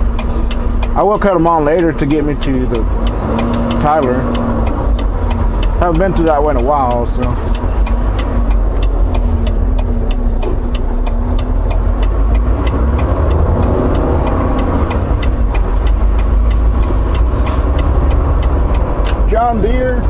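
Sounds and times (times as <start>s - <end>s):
road noise: 0.0s - 20.0s
truck diesel engine rumble: 0.0s - 20.0s
turn signal ticking: 0.0s - 20.0s.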